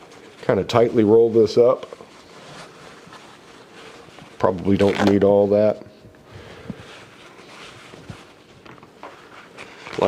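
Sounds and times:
paper towel rustling: 0:00.0 - 0:10.0.

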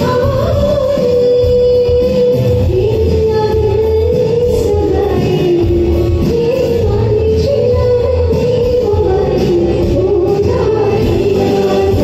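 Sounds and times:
karaoke backing track: 0:00.0 - 0:12.0
woman singing into microphone: 0:00.0 - 0:12.0.

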